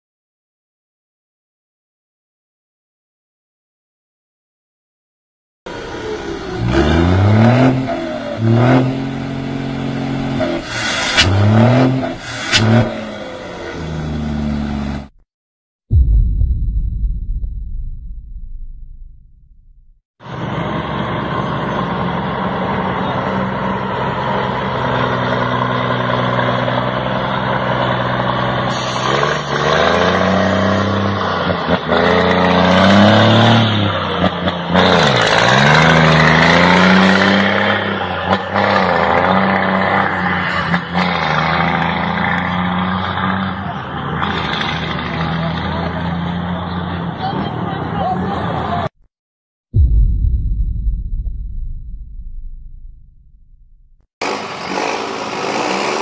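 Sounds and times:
truck diesel engine idling and revving: 5.7s - 15.2s, 19.5s - 48.9s.

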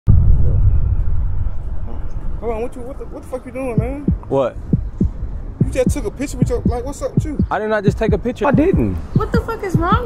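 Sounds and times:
city street rumble: 0.1s - 10.0s.

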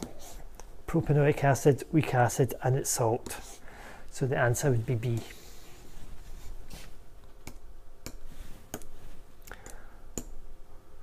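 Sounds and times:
person speaking: 0.8s - 5.6s.

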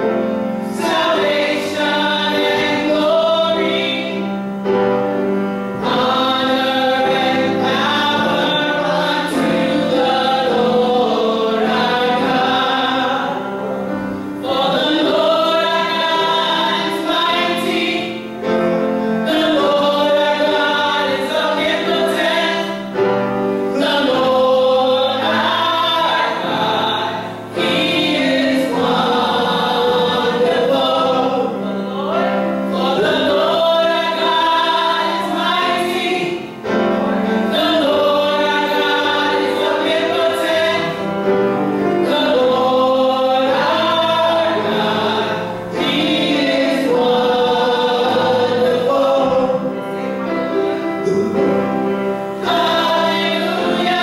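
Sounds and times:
group singing gospel in harmony: 0.0s - 54.0s.

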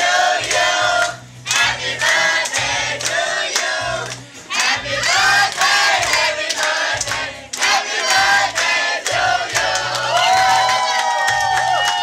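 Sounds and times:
hands clapping: 0.4s - 12.0s.

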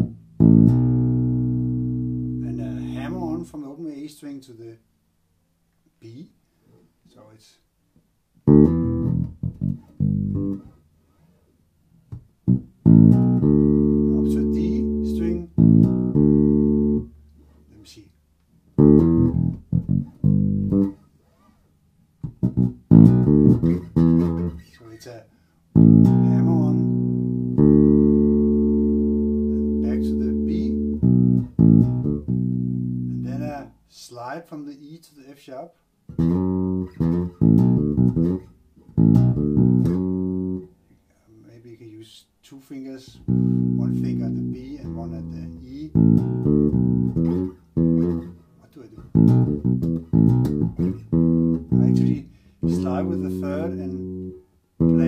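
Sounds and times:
electric bass playing slowly: 0.0s - 3.5s, 8.4s - 10.8s, 12.4s - 17.3s, 18.7s - 21.0s, 22.2s - 24.6s, 25.7s - 33.6s, 36.1s - 40.8s, 43.2s - 55.0s.

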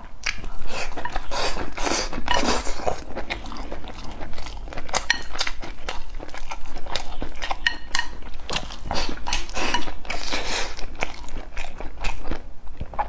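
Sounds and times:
close chewing: 0.0s - 13.0s.

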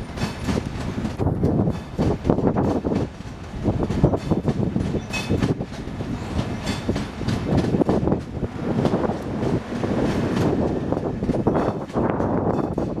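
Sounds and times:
train rumble: 0.0s - 13.0s
train wheels clattering over rail joints: 0.0s - 13.0s.

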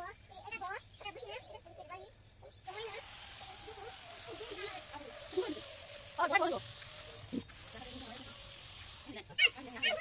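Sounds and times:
spray gun hissing: 2.6s - 10.0s.

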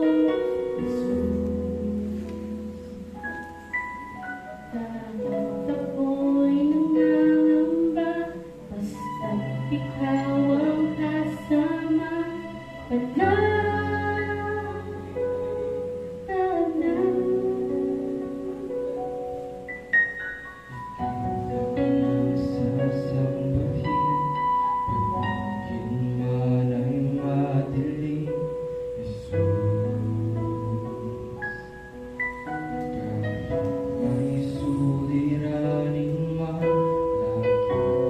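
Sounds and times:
keyboard accompaniment: 0.0s - 38.0s
woman singing into microphone: 4.7s - 15.6s, 16.2s - 18.8s.

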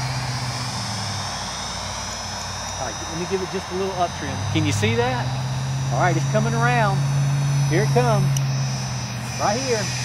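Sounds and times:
electric motor and propeller whining: 0.0s - 10.0s.

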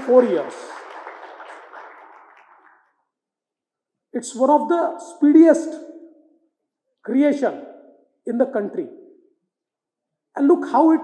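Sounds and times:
audience applause: 0.0s - 2.9s.

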